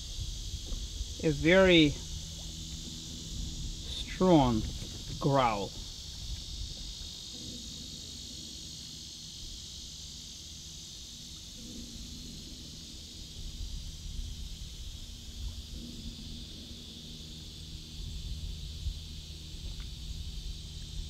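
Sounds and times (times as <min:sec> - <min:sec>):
insect buzz: 0:00.0 - 0:21.0
alligator bellowing: 0:00.8 - 0:10.2.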